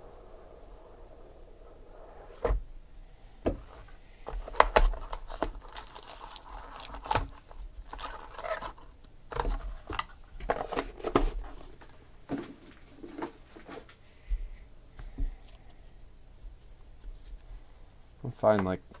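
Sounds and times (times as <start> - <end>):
crinkling foil rustles: 4.8 - 8.9.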